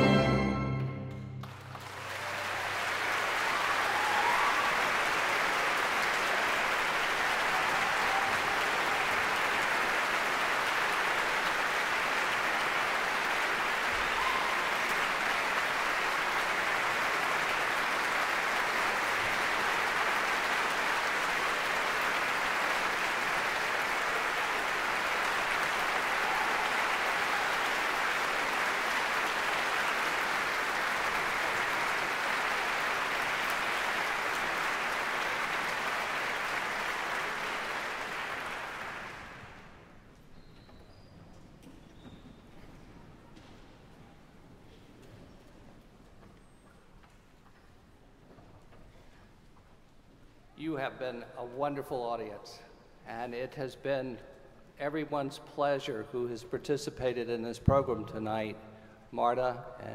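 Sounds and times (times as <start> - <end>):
orchestral music: 0.0 - 2.1
audience applause: 0.0 - 40.0.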